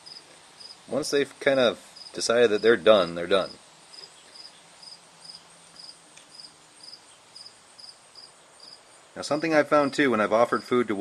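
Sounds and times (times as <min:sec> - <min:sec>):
insect chirping: 0:00.0 - 0:10.8.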